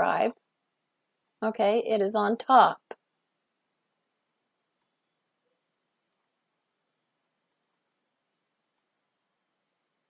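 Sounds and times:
computer mouse clicks: 6.1 - 6.3, 7.5 - 7.8, 8.7 - 8.9.

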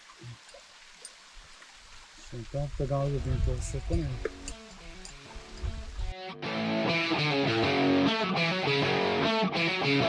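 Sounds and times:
outdoor background hiss: 0.0 - 6.8.

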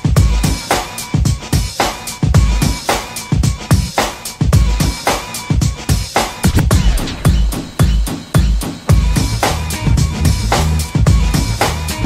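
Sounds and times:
instrumental breakbeat music: 0.0 - 12.0.

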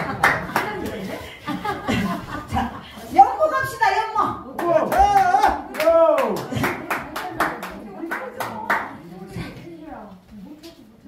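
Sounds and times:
small audience clapping: 0.0 - 1.2, 4.5 - 9.1.

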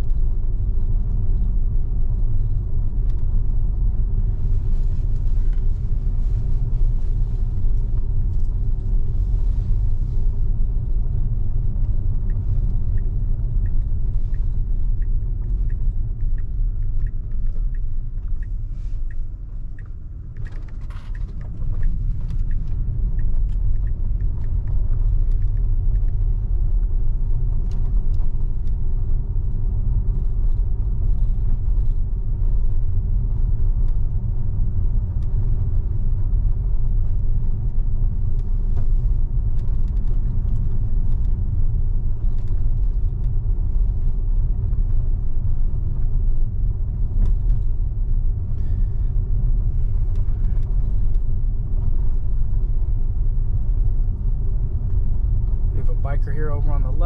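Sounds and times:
tyres rumbling on road: 0.0 - 57.0.

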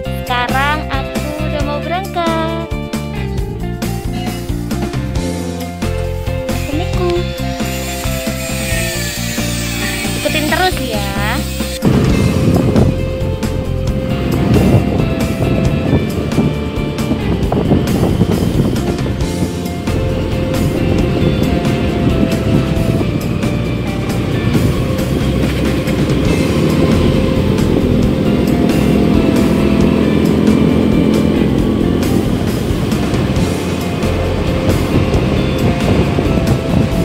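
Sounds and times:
background music: 0.0 - 37.0
motorbike engine rumble: 3.2 - 37.0
wind on microphone: 6.7 - 37.0.

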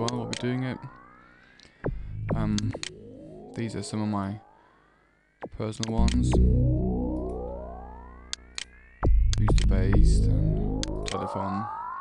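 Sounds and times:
synthesizer bass sweep: 0.0 - 4.5, 5.4 - 12.0.

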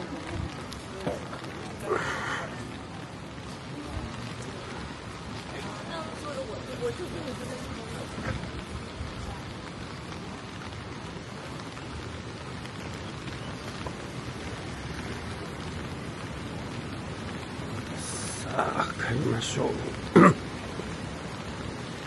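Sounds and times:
steady rain falling: 0.0 - 22.0.

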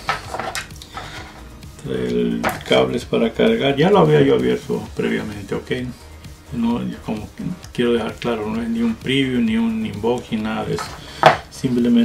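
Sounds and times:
light rattling of small items: 0.0 - 1.5, 9.8 - 12.0.

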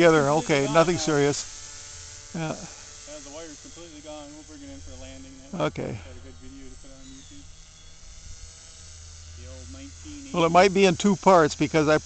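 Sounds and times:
electric motor whine: 0.0 - 12.0
low steady hum: 0.0 - 12.0.

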